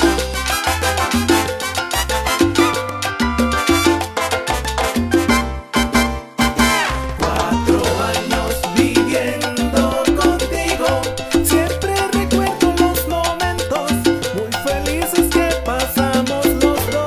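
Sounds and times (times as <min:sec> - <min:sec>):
salsa band playing: 0:00.0 - 0:17.0.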